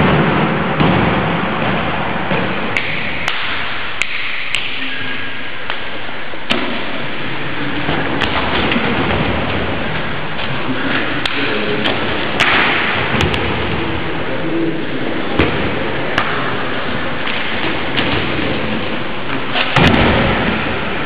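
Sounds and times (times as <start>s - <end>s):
steady loud hiss: 0.0s - 21.0s.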